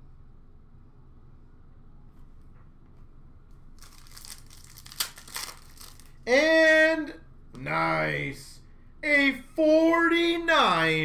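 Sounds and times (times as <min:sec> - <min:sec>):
foil wrapper crinkling and tearing: 0:03.8 - 0:06.2
man exclaiming loudly: 0:06.3 - 0:11.0.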